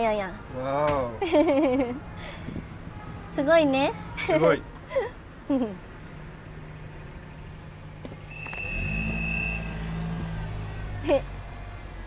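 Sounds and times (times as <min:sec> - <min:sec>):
high squeal-like tone: 0:08.3 - 0:10.2.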